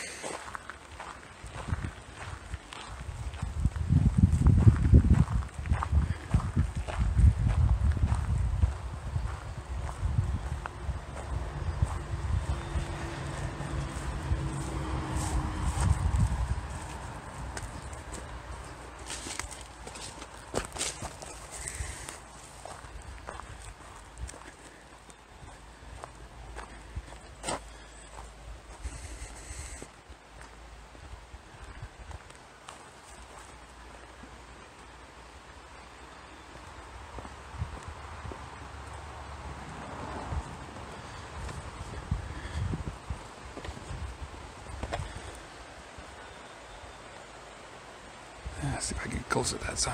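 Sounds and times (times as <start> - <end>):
footsteps on dry grass and gravel: 0.0 - 46.4
low rumble on microphone: 2.8 - 18.8
footsteps clicking on stones: 13.7 - 30.6.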